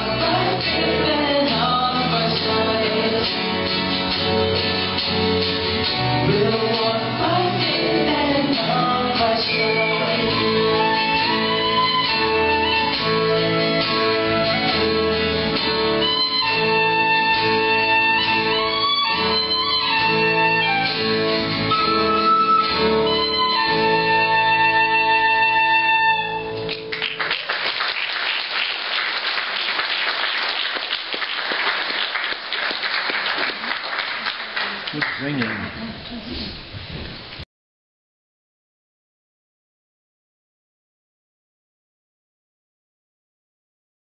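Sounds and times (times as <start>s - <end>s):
violin and guitar: 0.0s - 26.7s
flute melody: 9.2s - 26.7s
audience applauding: 26.7s - 36.0s.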